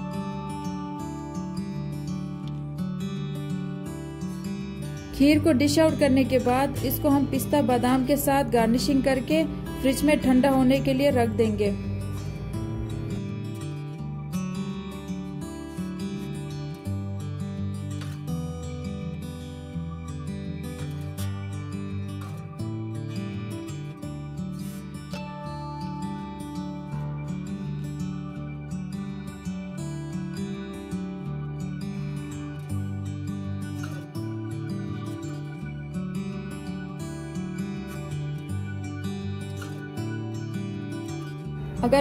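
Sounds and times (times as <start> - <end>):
plucked acoustic guitar: 0.0 - 42.0.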